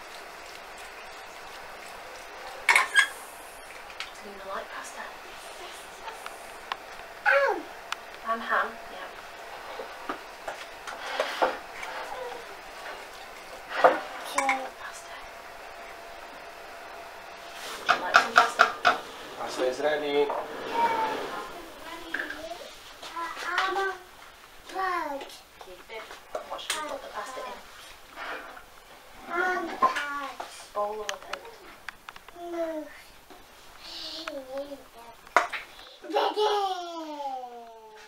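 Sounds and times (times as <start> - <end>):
child calling out: 7.2 - 7.7.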